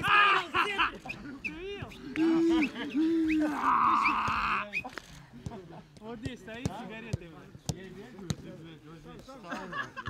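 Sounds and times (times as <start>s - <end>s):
men talking: 0.0s - 10.0s
football being kicked: 6.2s - 8.5s.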